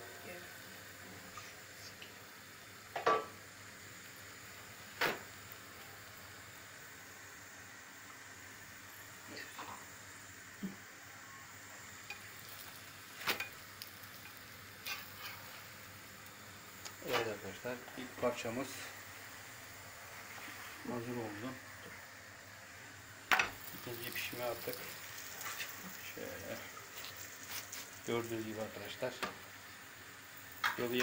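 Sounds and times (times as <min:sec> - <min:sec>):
flatbread sizzling in a pan: 0:00.0 - 0:31.0.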